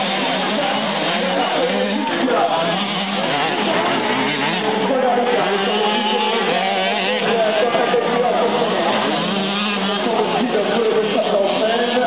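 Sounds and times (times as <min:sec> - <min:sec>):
motocross bikes revving: 0:00.0 - 0:12.0.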